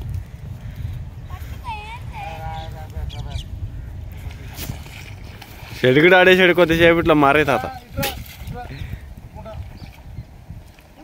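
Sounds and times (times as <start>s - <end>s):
steady low rumble: 0.0s - 5.8s
distant voices calling out: 0.5s - 4.6s.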